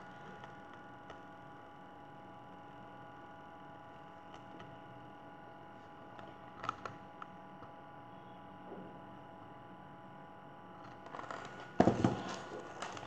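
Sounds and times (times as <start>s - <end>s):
faint steady hum: 0.0s - 13.0s
book pages rustling and knocking: 11.2s - 13.0s.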